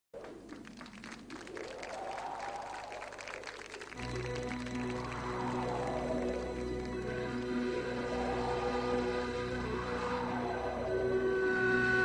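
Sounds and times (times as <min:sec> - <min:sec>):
audience applauding: 0:00.2 - 0:09.2.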